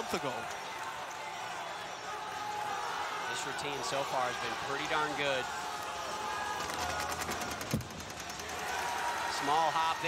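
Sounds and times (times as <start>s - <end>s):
scattered clapping: 0.0s - 2.8s.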